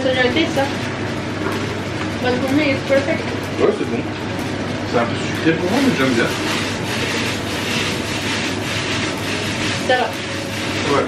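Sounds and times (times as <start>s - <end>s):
cooker hood humming: 0.0s - 11.0s.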